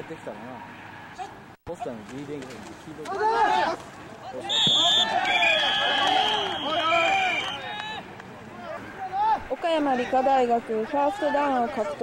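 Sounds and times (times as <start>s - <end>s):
voices shouting: 3.0s - 12.0s
referee whistles blowing: 4.4s - 8.0s.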